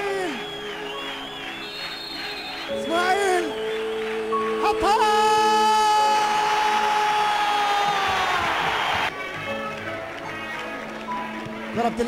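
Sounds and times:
stadium crowd roar: 0.0s - 12.0s
commentator's long held shout: 4.6s - 8.1s.

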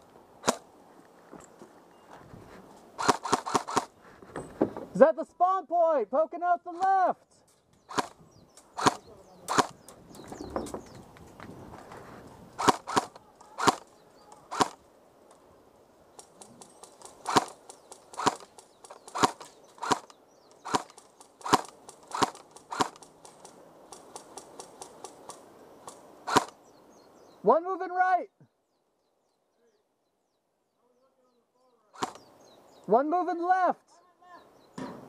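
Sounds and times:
airsoft rifle shots: 0.4s - 0.6s, 3.0s - 3.9s, 7.9s - 9.8s, 12.6s - 13.9s, 14.5s - 14.8s, 16.2s - 26.6s, 32.0s - 32.3s
faint clicks: 16.2s - 26.6s.

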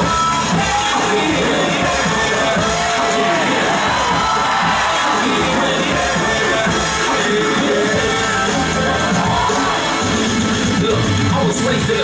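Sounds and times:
hip-hop instrumental beat: 0.0s - 12.0s.

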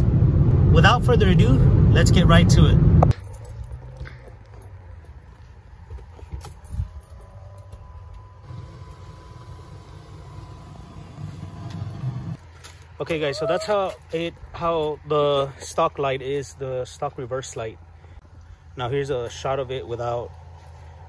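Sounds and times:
car engine rumble: 0.0s - 13.2s, 14.0s - 21.0s.

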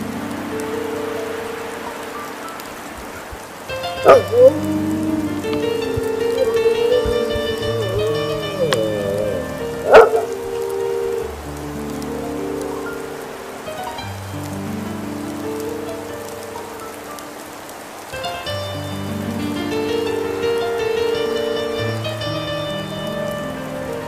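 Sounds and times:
slow sustained chord music: 3.7s - 16.4s.

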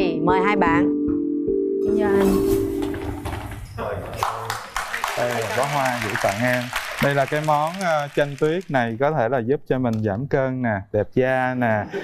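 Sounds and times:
hard-soled footsteps on stage: 2.7s - 3.8s.

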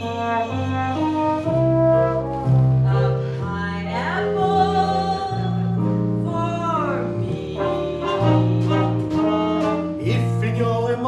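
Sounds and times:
brass band playing: 0.0s - 3.6s, 7.2s - 10.7s.

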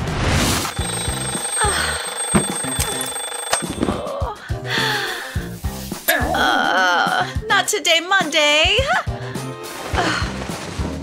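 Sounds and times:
alarm clock ringing: 0.7s - 4.1s
background music: 0.8s - 11.0s.

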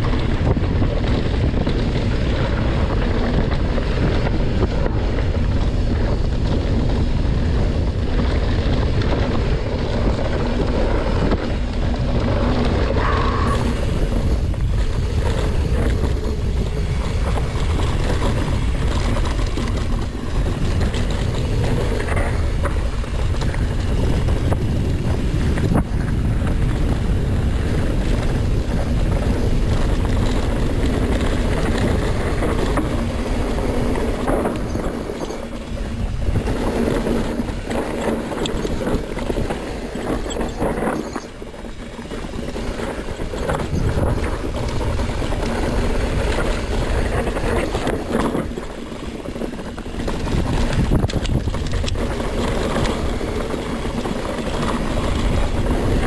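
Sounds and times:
bike rattling on rough dirt: 0.0s - 56.0s
wind buffeting microphone: 0.0s - 56.0s.

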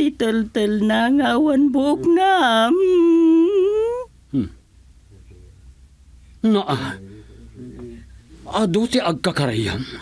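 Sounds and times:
person humming long hmm: 3.7s - 4.6s.

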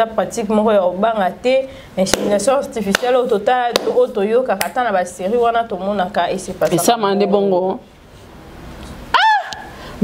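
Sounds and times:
short high-pitched cry: 9.1s - 9.7s.

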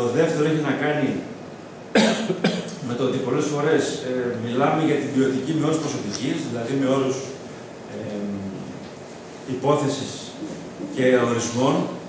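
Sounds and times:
person coughing: 1.9s - 2.8s.

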